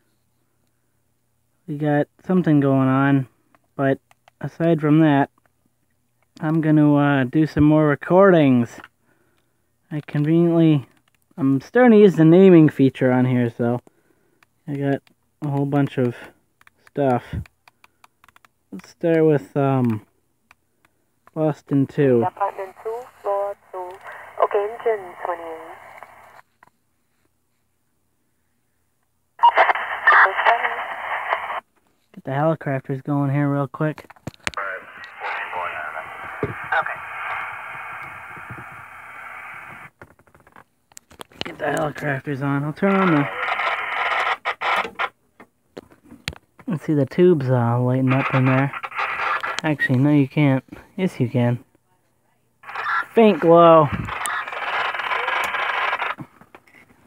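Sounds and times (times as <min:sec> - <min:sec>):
tinny radio voice transmission: 0:22.1 - 0:26.2, 0:29.4 - 0:31.6, 0:34.6 - 0:38.4, 0:41.5 - 0:43.7, 0:48.0 - 0:50.0, 0:52.6 - 0:56.2.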